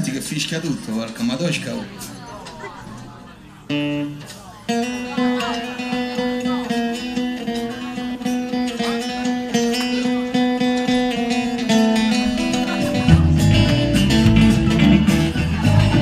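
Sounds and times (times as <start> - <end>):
acoustic guitar strumming: 0.8 - 16.0
guitar chord ringing: 3.7 - 16.0.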